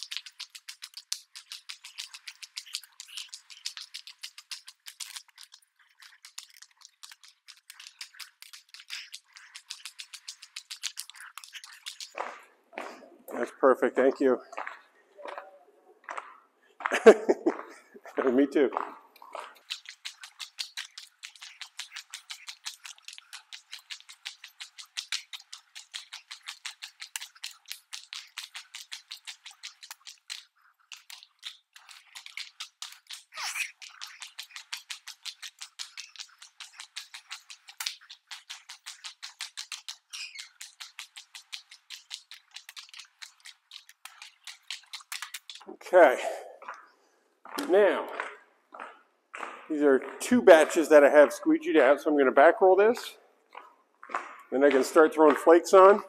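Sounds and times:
rapid even clicking: 0.0s - 12.4s, 18.8s - 45.7s, 49.4s - 52.0s
man speaking: 13.2s - 14.5s, 18.1s - 18.8s, 45.7s - 46.6s, 47.6s - 48.2s, 49.7s - 53.2s, 54.5s - 56.0s.

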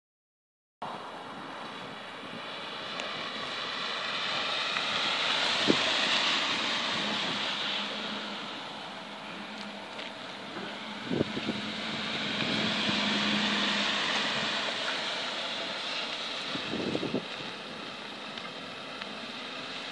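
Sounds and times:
truck engine: 0.9s - 19.9s
tyres on dirt: 1.7s - 19.9s.

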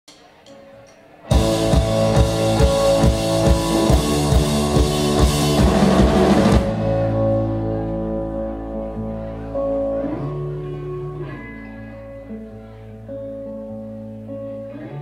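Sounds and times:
live rock band playing: 1.2s - 15.0s.

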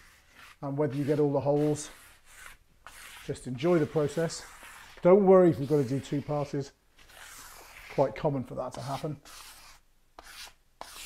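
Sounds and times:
spreader scraping paste on concrete: 0.0s - 11.0s.

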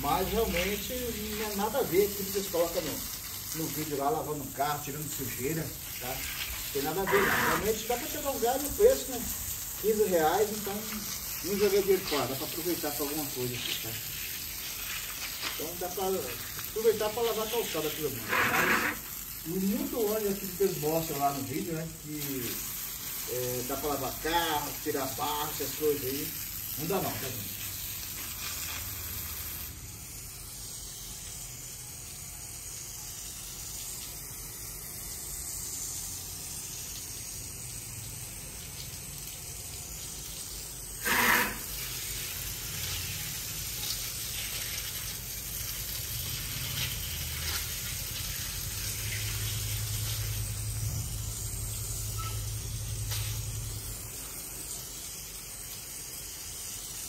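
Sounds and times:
water jet spraying on concrete: 0.0s - 57.0s
loud burst of noise: 41.0s - 41.7s.

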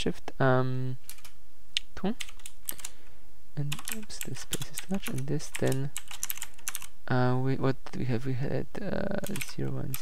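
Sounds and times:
computer keyboard keystroke clicks: 2.2s - 2.9s, 3.7s - 6.9s.

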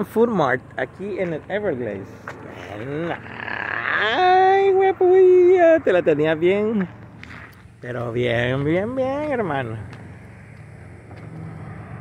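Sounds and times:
motor vehicle hum: 0.0s - 12.0s.

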